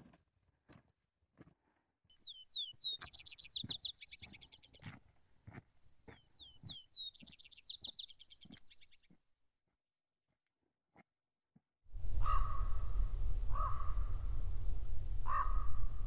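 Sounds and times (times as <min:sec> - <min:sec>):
footsteps on rocky trail: 0:00.0 - 0:11.6
songbird whistles and trill: 0:02.1 - 0:04.9, 0:06.4 - 0:09.1.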